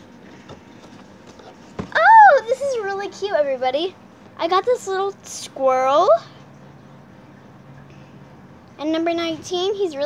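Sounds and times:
cardboard calendar handling: 0:00.3 - 0:01.9.

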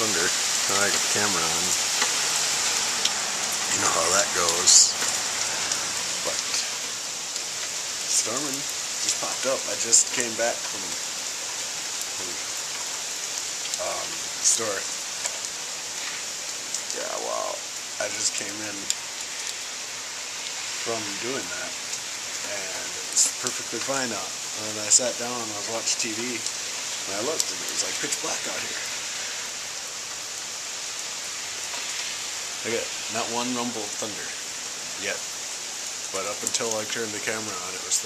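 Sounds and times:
rain drop ticks: 0:00.0 - 0:38.0
steady rain: 0:00.0 - 0:38.0.

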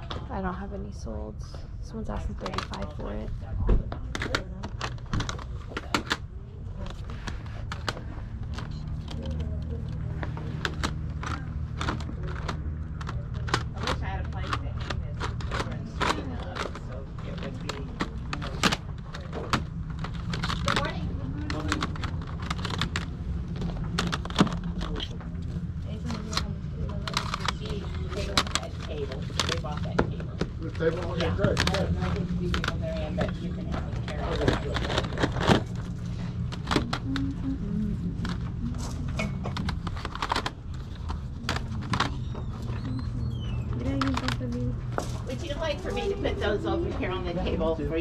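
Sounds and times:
plastic cd cases clacking: 0:03.9 - 0:45.2.

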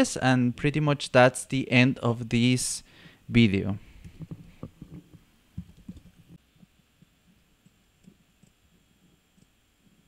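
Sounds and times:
computer mouse clicks and taps: 0:04.0 - 0:06.4.

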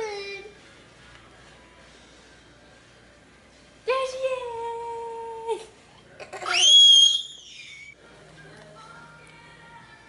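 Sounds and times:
child squealing: 0:06.4 - 0:07.9.

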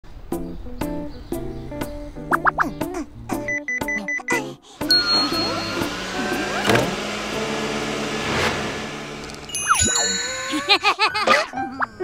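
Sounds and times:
cartoon background music: 0:00.3 - 0:07.0, 0:09.6 - 0:12.0
robot vacuum cleaner whirring: 0:04.9 - 0:10.4.

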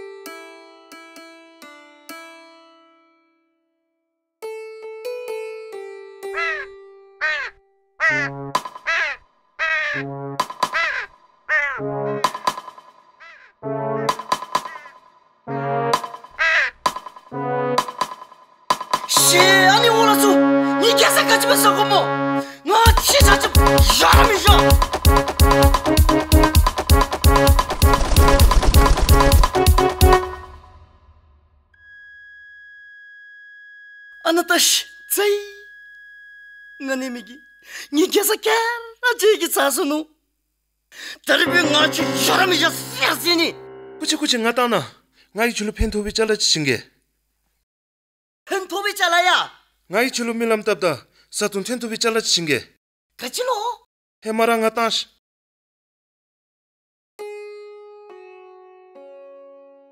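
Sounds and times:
crows cawing: 0:06.3 - 0:10.0, 0:10.6 - 0:12.5, 0:13.1 - 0:15.1, 0:16.3 - 0:17.0.

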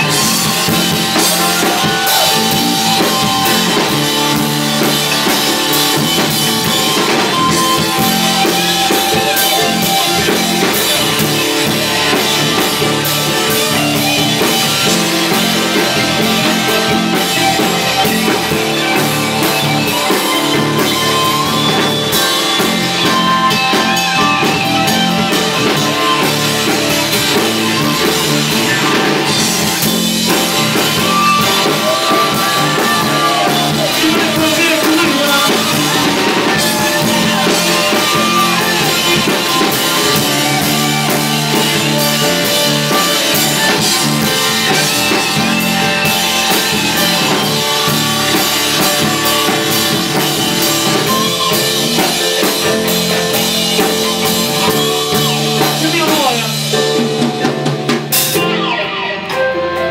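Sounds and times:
live band playing: 0:00.0 - 0:59.9.

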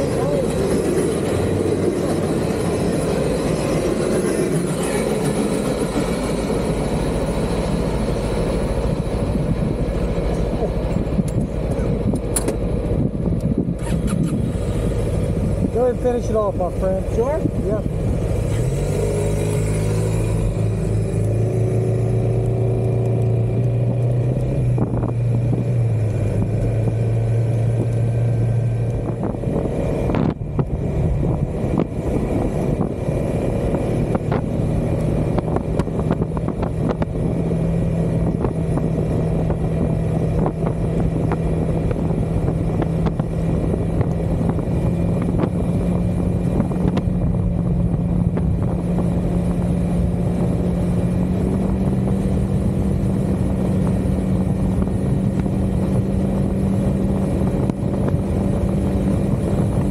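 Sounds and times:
scooter engine cruising: 0:00.0 - 0:59.9
wind and road noise: 0:00.0 - 0:59.9.

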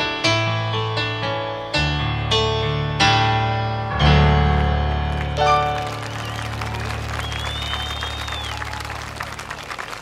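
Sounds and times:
audience applauding: 0:04.6 - 0:10.0
high whistle: 0:06.0 - 0:08.9.

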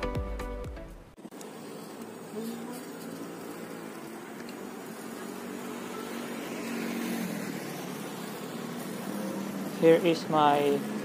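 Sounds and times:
electric motor hum: 0:01.2 - 0:11.0
road and wind noise: 0:04.2 - 0:11.0.

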